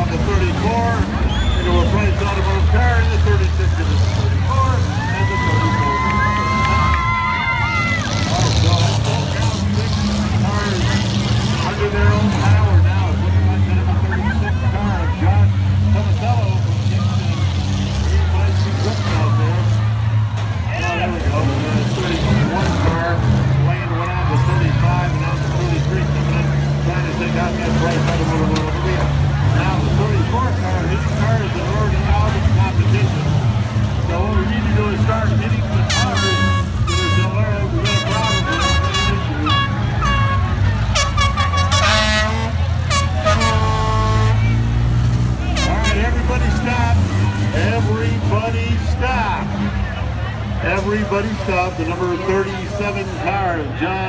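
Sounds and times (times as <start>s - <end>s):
car engines revving: 0.0s - 54.0s
crowd chatter: 0.0s - 54.0s
horn-like tone: 35.9s - 44.6s.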